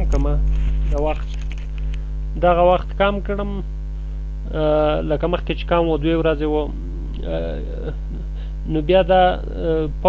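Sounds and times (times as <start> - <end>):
man speaking: 0.0 - 1.3, 2.3 - 3.7, 4.4 - 10.0
electrical mains hum: 0.0 - 10.0
drawn-out hesitation vowel: 6.4 - 10.0.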